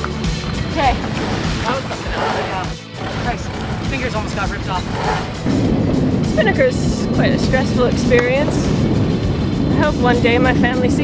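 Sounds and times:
background music: 0:00.0 - 0:11.0
indistinct voices: 0:00.6 - 0:08.1.

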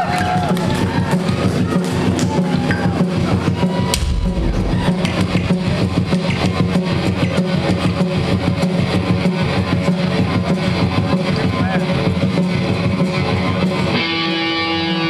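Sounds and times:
drum kit: 0:03.8 - 0:08.8
bass guitar: 0:03.9 - 0:08.4
electric guitars: 0:12.2 - 0:15.0.

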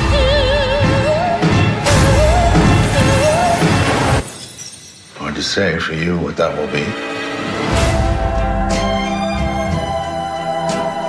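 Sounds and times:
soundtrack music with high note: 0:00.0 - 0:04.3.

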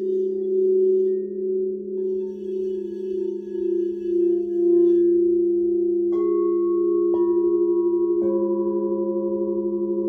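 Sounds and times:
crystal singing bowls ringing: 0:00.0 - 0:10.0.

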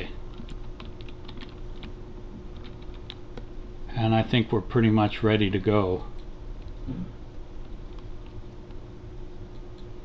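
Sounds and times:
computer keyboard typing: 0:00.3 - 0:03.2, 0:07.6 - 0:08.4.

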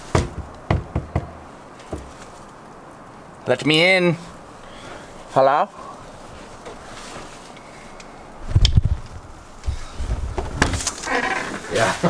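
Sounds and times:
door thumps and knocks: 0:00.0 - 0:02.1.

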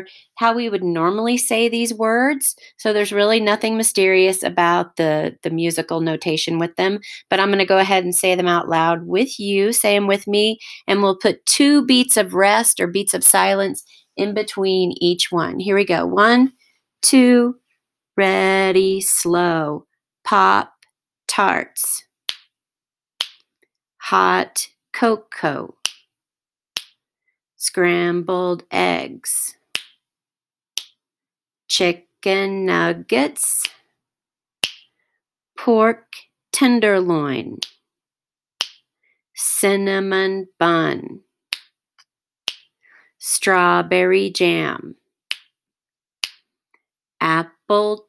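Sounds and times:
woman speaking: 0:00.0 - 0:17.6, 0:18.2 - 0:22.1, 0:24.0 - 0:25.8, 0:27.6 - 0:29.6, 0:31.7 - 0:33.8, 0:35.6 - 0:37.6, 0:39.4 - 0:41.2, 0:43.2 - 0:45.0, 0:47.2 - 0:48.0
finger snaps: 0:23.2 - 0:23.5, 0:26.8 - 0:27.0, 0:30.8 - 0:31.0, 0:34.6 - 0:35.0, 0:37.6 - 0:37.8, 0:38.6 - 0:38.9, 0:41.5 - 0:42.8, 0:46.2 - 0:46.5.

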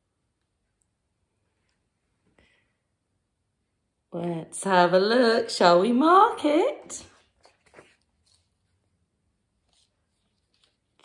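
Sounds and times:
card handling sounds: 0:07.1 - 0:08.8.

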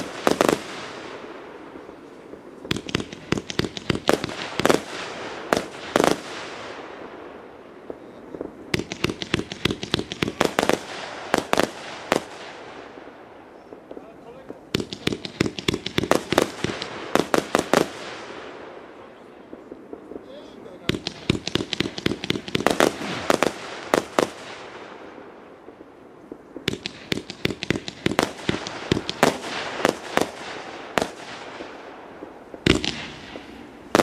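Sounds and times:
firework cake bangs: 0:20.8 - 0:24.7, 0:26.6 - 0:34.0.

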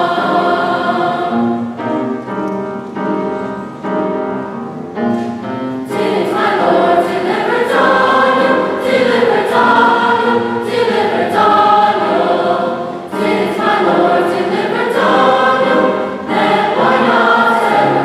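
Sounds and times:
large choir singing: 0:00.0 - 0:02.3, 0:05.8 - 0:18.0
piano music: 0:00.0 - 0:18.0.

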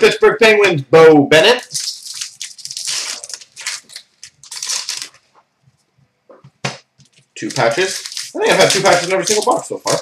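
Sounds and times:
cards rustling: 0:01.6 - 0:05.3, 0:07.0 - 0:10.0
wrapper crinkling: 0:01.6 - 0:05.3, 0:07.0 - 0:10.0.

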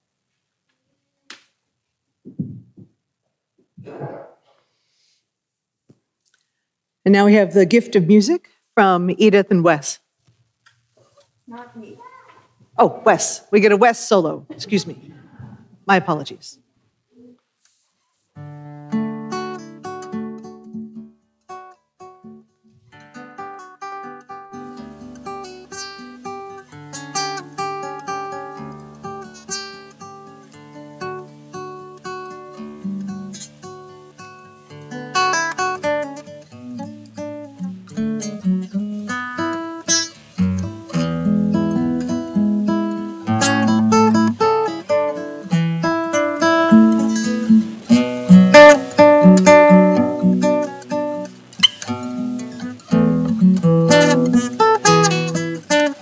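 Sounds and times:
classical guitar fingerpicked: 0:18.4 - 0:56.0.

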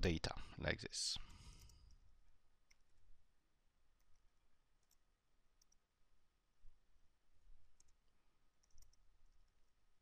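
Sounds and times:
person speaking: 0:00.0 - 0:01.4
computer keyboard keystrokes: 0:08.6 - 0:09.4.

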